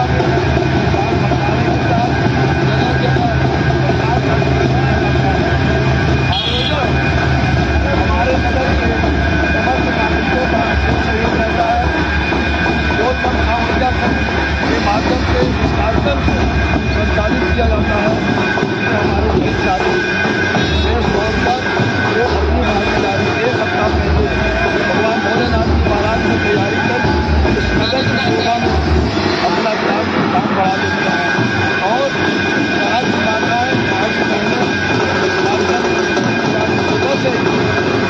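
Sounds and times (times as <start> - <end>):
crowd voices: 0.0 - 38.0.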